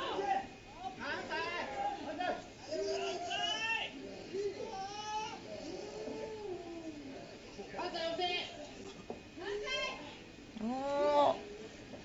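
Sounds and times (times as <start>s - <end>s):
arena noise: 0.0s - 12.0s.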